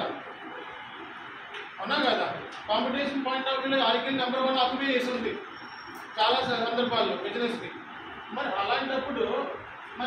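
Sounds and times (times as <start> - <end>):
man talking: 6.2 - 10.0.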